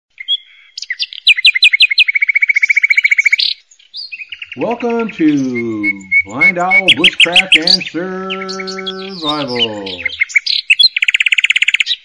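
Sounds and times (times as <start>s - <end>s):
bird singing: 0.1s - 12.0s.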